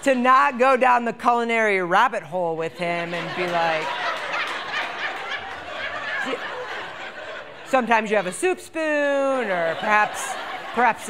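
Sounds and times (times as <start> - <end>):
audience laughing: 2.7 - 11.0.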